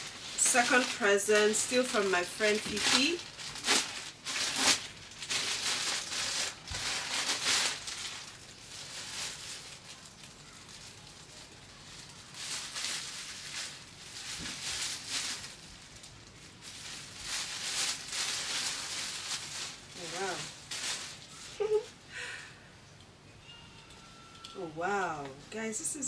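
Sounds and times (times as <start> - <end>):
plastic packaging crinkling: 0.0 - 22.0.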